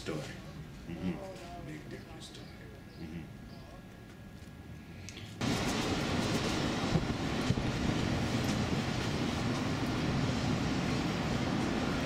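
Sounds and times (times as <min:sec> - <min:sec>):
traffic rumble and hiss: 0:00.0 - 0:12.0.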